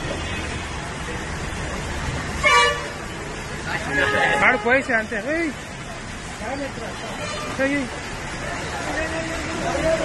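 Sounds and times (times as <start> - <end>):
street traffic hiss: 0.0 - 10.0
water on flooded road: 0.0 - 10.0.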